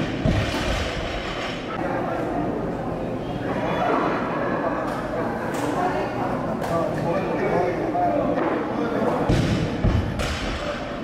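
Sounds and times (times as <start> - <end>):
busy training hall noise: 0.0 - 11.0.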